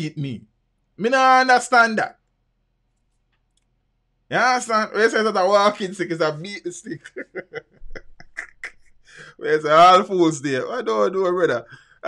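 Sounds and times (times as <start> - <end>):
man speaking: 0.0 - 2.2, 4.3 - 11.9
faint low hum: 0.0 - 12.0
faint clicks: 2.2 - 3.8.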